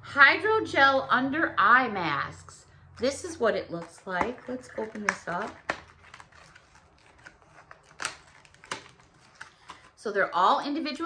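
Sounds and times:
paperboard box being opened: 3.7s - 9.9s
foil pouches rustling: 3.7s - 10.0s.

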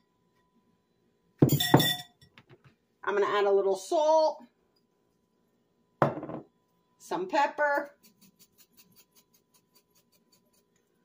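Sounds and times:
glass bowl clinking on stone countertop: 1.4s - 2.5s, 6.0s - 6.5s.

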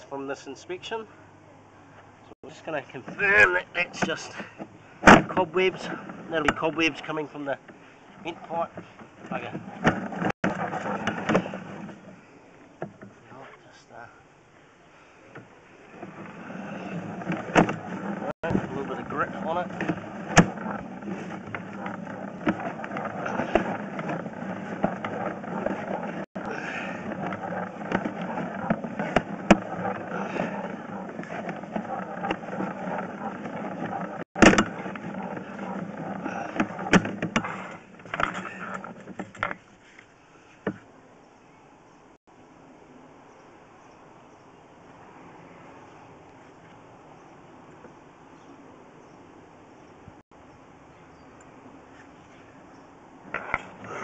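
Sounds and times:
cable scraping and rattling in pipe: 5.3s - 12.1s, 15.9s - 40.0s, 53.3s - 54.0s.

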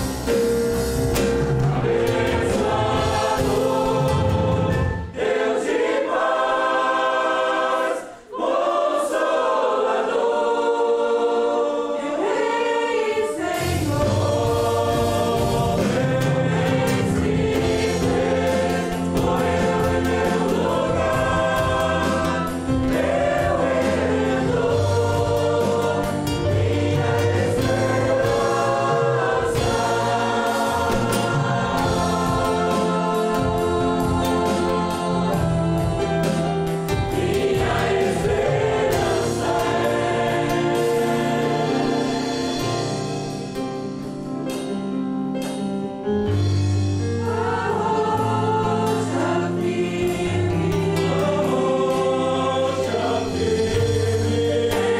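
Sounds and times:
keyboard and band accompaniment: 0.0s - 6.8s, 12.3s - 54.9s
group singing a hymn: 0.0s - 43.5s, 47.0s - 54.9s.

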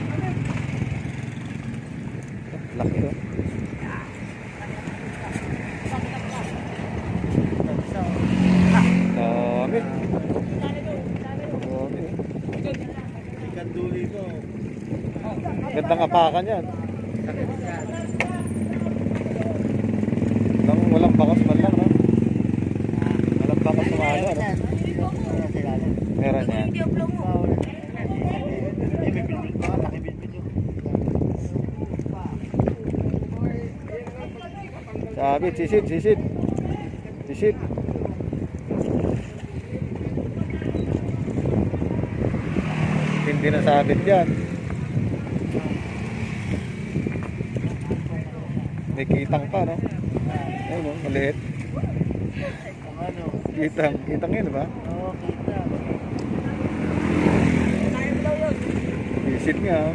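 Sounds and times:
people talking: 0.0s - 0.8s, 47.7s - 59.9s
water lapping against boat hull: 0.0s - 59.9s
wind buffeting microphone: 0.0s - 59.9s
engine running at low revs: 18.5s - 27.0s.

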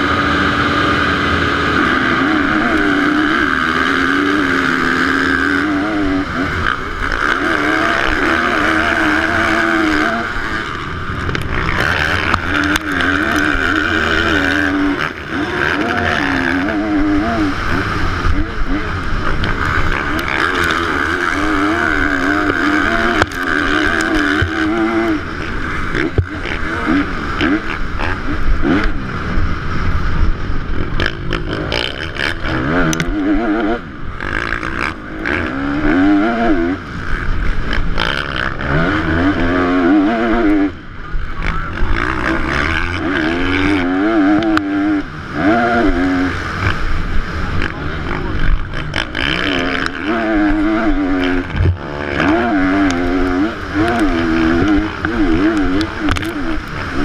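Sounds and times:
motorcycle engine revving: 0.0s - 57.0s
wind rushing over microphone: 0.0s - 57.0s.

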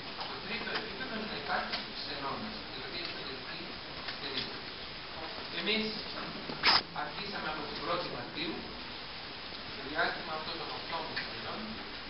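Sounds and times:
man lecturing: 0.2s - 8.7s, 9.8s - 11.8s
loud rasping noise: 6.6s - 6.9s.

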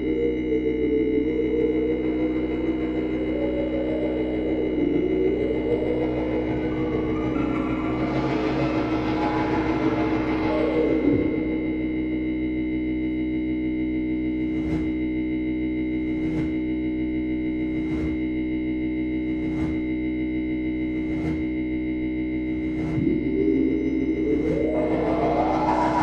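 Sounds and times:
sustained organ-like drone chord: 0.0s - 26.0s
noisy swell: 0.5s - 12.8s, 22.4s - 26.0s.

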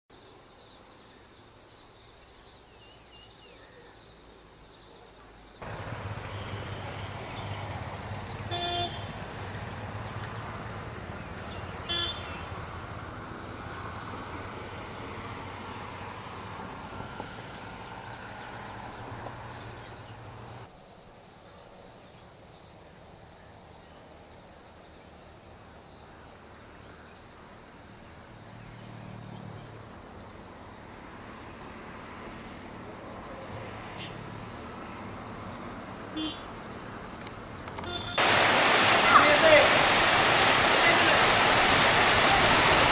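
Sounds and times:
insect drone: 0.1s - 37.0s.

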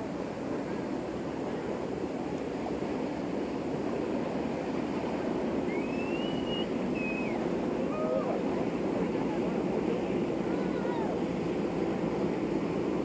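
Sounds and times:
low rushing river: 0.0s - 13.0s
high gliding whistle: 5.6s - 8.3s.

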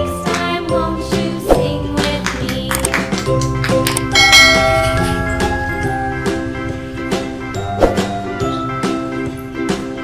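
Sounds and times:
children's background music: 0.0s - 10.0s
bell-like chime: 4.0s - 9.6s.

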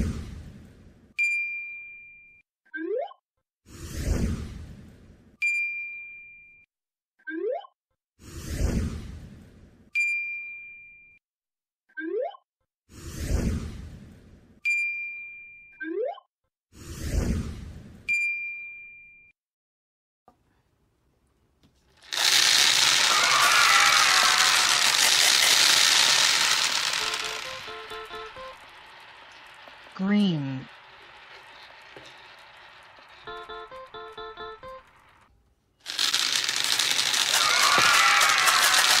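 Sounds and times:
short rising slide: 3.7s - 5.1s, 8.2s - 9.6s, 12.9s - 14.4s, 16.8s - 18.0s, 22.0s - 39.0s
plastic balls rattling on a tabletop: 21.9s - 33.9s, 35.8s - 39.0s.

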